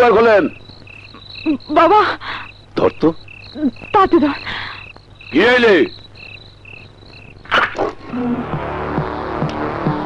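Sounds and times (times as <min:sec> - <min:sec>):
crickets chirping: 0:00.0 - 0:10.0
music with regular beat: 0:08.5 - 0:10.0.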